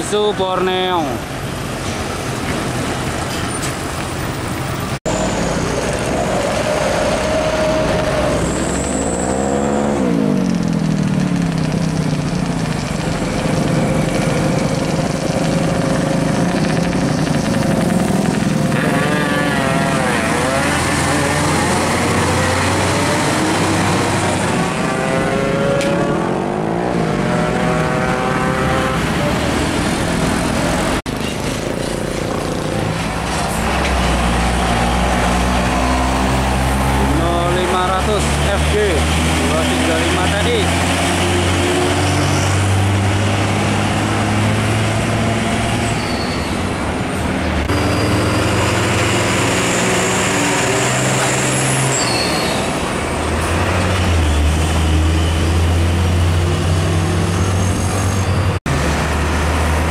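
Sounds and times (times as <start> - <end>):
diesel trucks driving past: 0.0 - 59.9.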